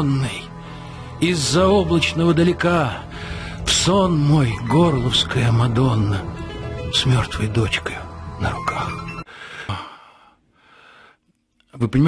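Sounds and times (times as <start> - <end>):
man speaking: 1.2 - 9.2
man breathing into microphone: 3.0 - 3.7, 9.3 - 11.2.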